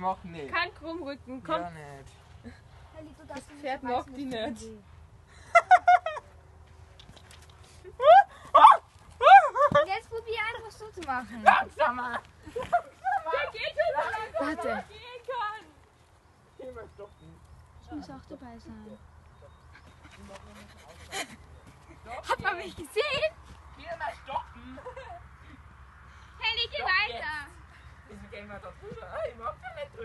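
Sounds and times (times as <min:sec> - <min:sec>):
teenage boy laughing: 0:05.4 - 0:06.3, 0:20.7 - 0:22.2, 0:24.6 - 0:25.3.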